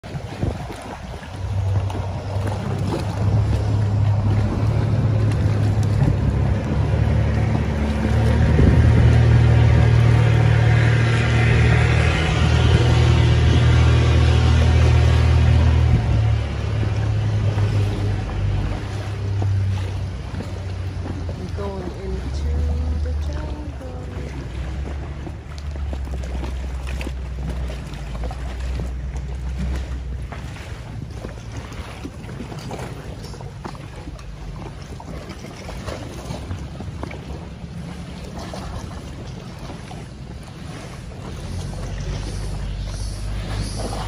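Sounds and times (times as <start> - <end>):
boat engine drone: 0.0 - 44.0.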